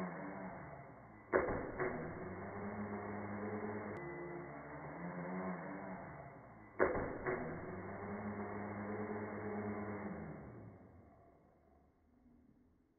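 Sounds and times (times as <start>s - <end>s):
quadcopter motors whirring: 0.0s - 11.0s.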